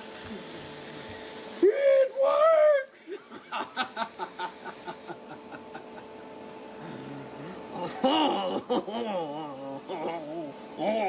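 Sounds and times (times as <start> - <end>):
sparkler hissing: 0.0 - 5.3
faint steady hum: 0.0 - 11.0
man laughing: 2.0 - 6.3, 6.9 - 10.5.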